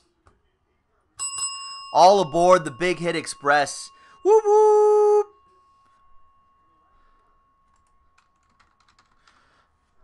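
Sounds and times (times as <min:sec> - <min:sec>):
bell ringing: 0:01.2 - 0:09.6.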